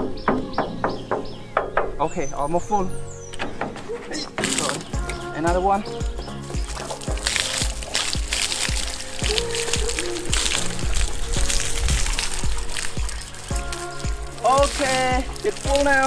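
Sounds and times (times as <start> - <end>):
background music with steady beat: 0.0 - 16.0
water pouring into plastic drum: 4.4 - 16.0.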